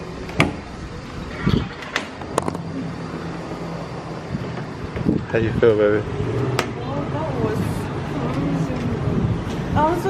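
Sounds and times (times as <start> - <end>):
road traffic: 0.0 - 10.0.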